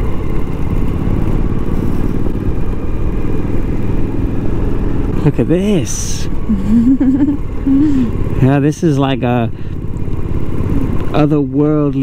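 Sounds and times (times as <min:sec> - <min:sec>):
motorcycle engine rumble: 0:00.0 - 0:12.0.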